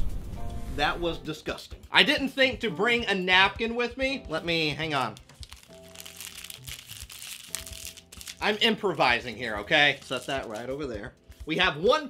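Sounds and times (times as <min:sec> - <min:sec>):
soft background music: 0:00.0 - 0:12.0
foil wrapper crinkling: 0:04.7 - 0:10.9.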